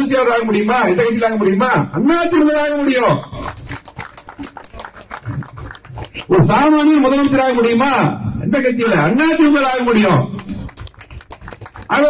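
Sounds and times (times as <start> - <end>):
man talking through a microphone: 0.0 - 3.6, 6.2 - 10.7.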